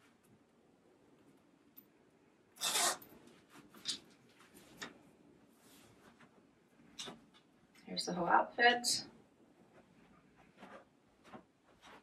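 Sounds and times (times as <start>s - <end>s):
zipper rasps: 2.6s - 3.1s
jacket fabric rustling: 9.5s - 12.0s.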